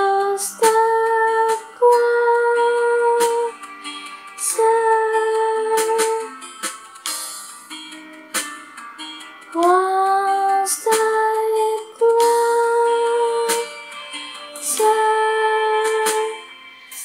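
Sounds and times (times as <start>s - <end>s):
woman singing wordless notes: 0.0s - 3.6s, 4.4s - 6.5s, 9.5s - 14.0s, 14.6s - 17.0s
soft backing accompaniment: 0.0s - 17.0s.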